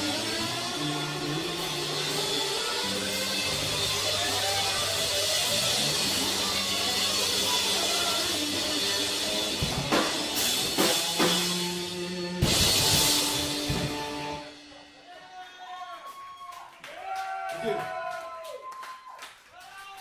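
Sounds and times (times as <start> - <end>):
live rock band playing: 0.0 - 15.1
hard accented drum hits: 9.6 - 14.5.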